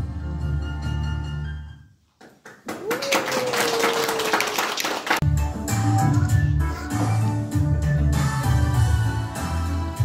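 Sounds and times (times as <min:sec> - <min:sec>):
audience clapping: 0:02.2 - 0:05.3
music with strong bass line: 0:05.2 - 0:10.0
recorded dance song: 0:05.2 - 0:10.0.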